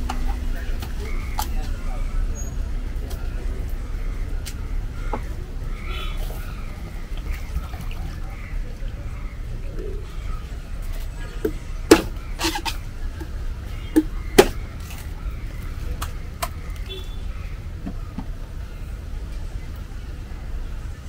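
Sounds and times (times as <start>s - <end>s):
low background rumble: 0.0s - 21.0s
blade chopping coconut: 11.4s - 14.7s.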